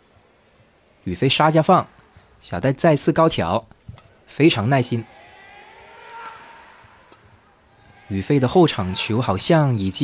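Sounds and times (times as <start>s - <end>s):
court shoes squeaking: 3.6s - 8.9s.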